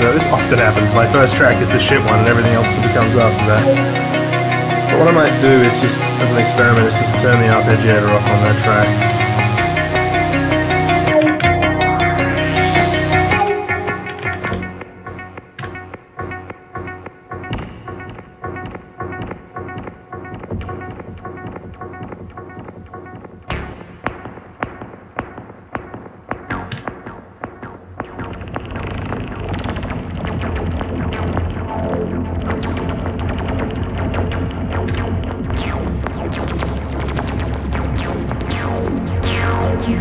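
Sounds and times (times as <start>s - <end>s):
heavy synth bass: 0.0s - 40.0s
synthesizer sequenced pattern: 0.0s - 40.0s.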